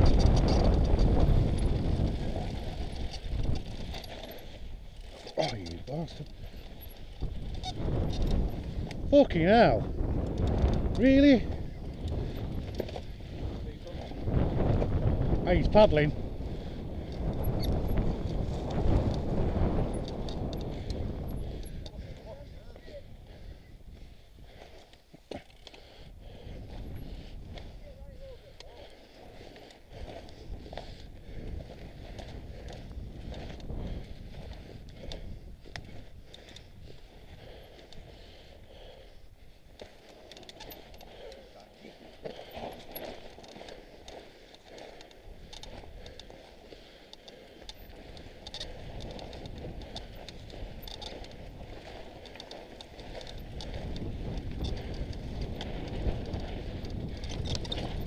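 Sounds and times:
bike knocks and rattles: 0.0s - 5.7s.

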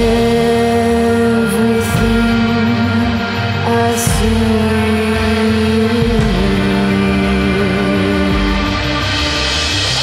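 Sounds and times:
live band playing held chords: 0.0s - 10.0s
steady bass line: 0.0s - 10.0s.

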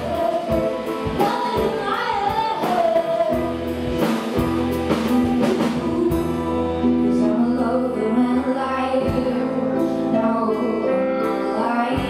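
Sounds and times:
woman singing: 0.0s - 4.4s, 5.0s - 12.0s
live band playing: 0.0s - 12.0s
low bass line: 3.3s - 10.8s.

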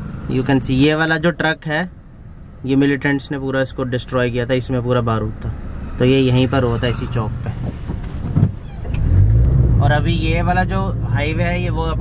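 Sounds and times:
car engine and road rumble: 0.0s - 12.0s
brief thump: 7.6s - 9.0s.

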